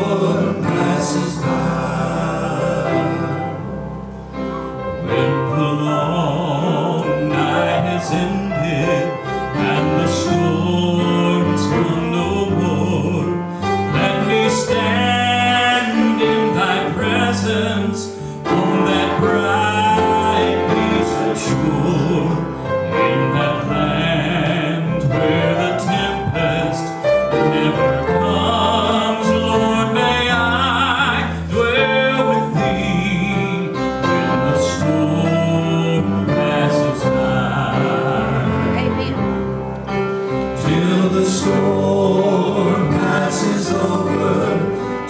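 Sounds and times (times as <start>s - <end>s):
men singing gospel song: 0.0s - 39.1s, 40.2s - 45.0s
piano accompaniment: 0.0s - 45.0s.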